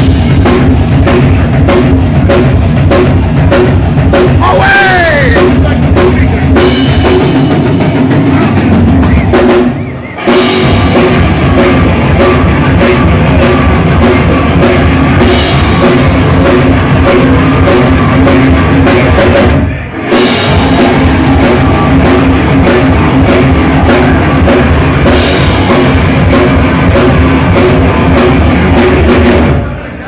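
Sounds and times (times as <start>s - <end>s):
pounding drum kit: 0.0s - 29.8s
distorted guitar: 0.0s - 30.0s
live rock band playing: 0.0s - 30.0s.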